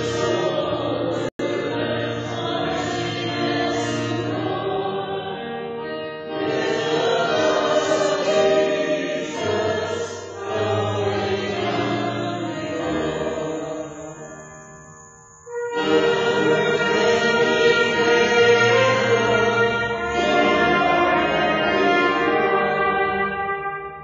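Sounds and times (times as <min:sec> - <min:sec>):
church choir singing: 0:00.0 - 0:24.0.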